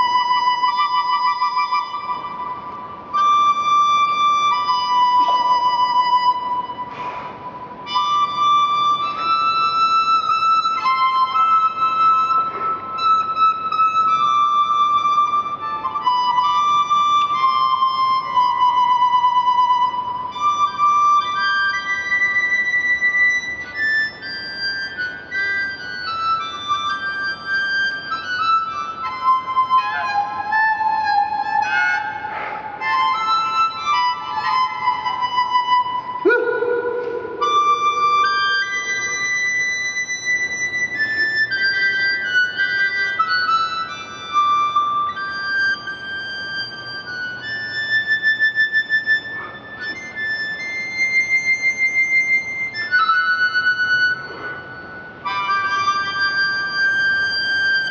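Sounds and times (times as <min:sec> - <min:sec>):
blues harmonica solo: 0:03.0 - 0:51.1.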